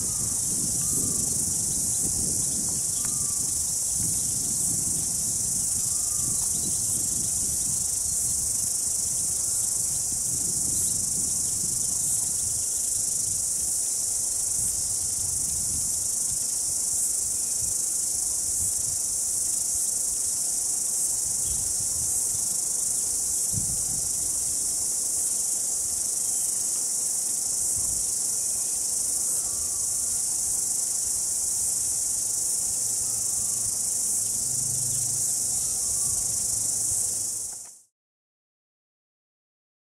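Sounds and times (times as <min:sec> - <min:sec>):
high-pitched insect chorus: 0:00.0 - 0:37.9.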